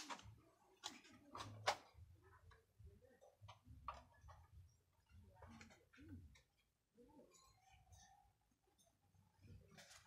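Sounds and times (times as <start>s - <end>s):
faint clicks and taps: 0.0s - 6.7s.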